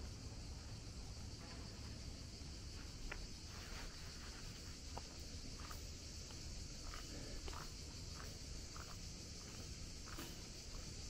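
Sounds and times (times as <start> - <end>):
steady high hiss: 0.0 - 11.0
footsteps on paving: 2.7 - 11.0.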